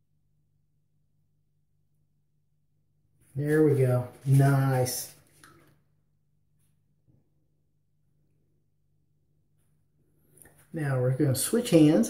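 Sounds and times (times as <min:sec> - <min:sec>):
person speaking: 0:03.3 - 0:05.5, 0:10.4 - 0:12.0.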